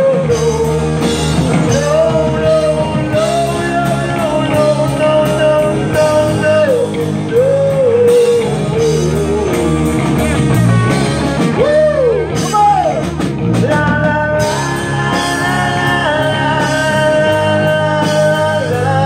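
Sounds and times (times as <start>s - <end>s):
person singing: 0.0s - 10.6s, 11.5s - 19.0s
rock band playing: 0.0s - 19.0s.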